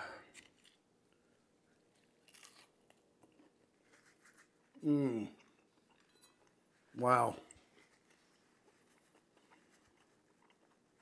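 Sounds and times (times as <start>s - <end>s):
crunching and chewing: 0.2s - 6.6s, 7.5s - 11.0s.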